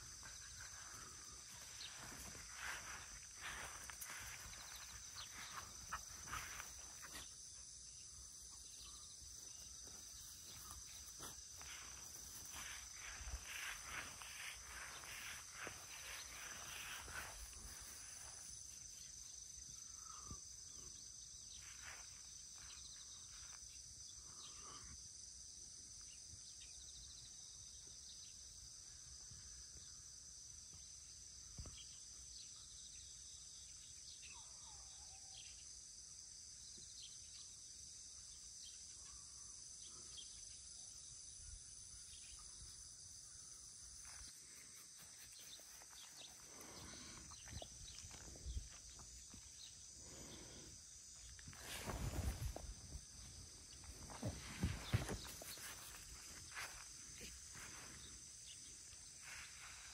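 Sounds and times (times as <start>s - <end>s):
crickets chirping: 0.0s - 59.9s.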